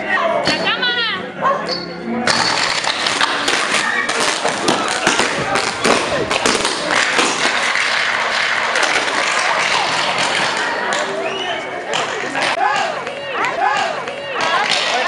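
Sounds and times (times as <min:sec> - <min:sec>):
people's voices: 0:00.0 - 0:15.0.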